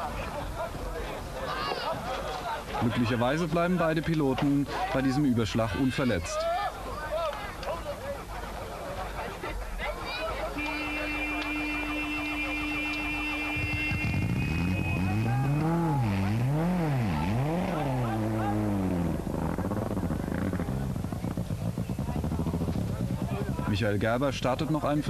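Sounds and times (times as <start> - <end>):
rally car engine revving: 11.4 - 24.7.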